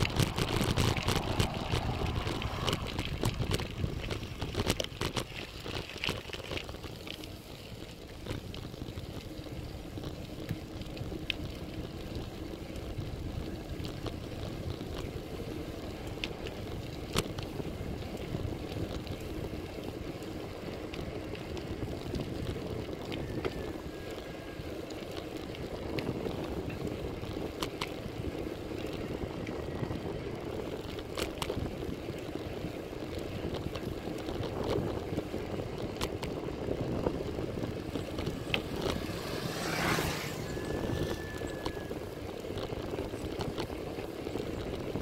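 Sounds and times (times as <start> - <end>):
sharp bicycle clicks: 0.0 - 45.0
wind and tyre noise: 0.0 - 45.0.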